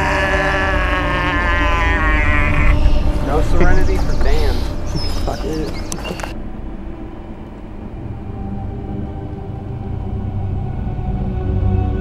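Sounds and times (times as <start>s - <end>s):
man screaming: 0.0s - 2.8s
low rumble: 0.0s - 12.0s.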